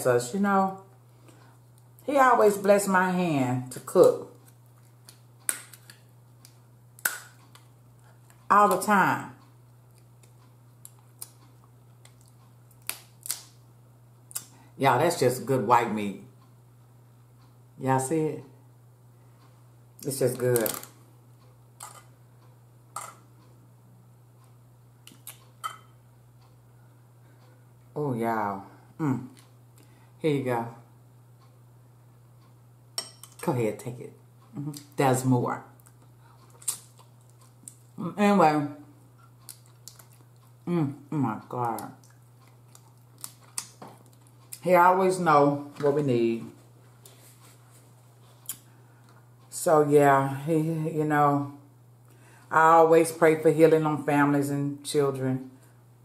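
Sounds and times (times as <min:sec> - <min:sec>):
low electrical hum: 0:00.0 - 0:56.0
mouth clicks while eating: 0:25.0 - 0:25.6, 0:35.8 - 0:37.8, 0:39.2 - 0:40.6.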